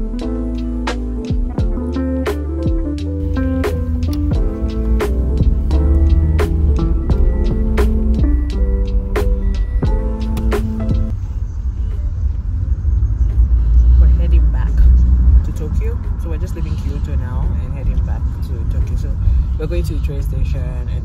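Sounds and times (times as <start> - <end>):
vehicle rumble from inside: 1.5 - 21.0.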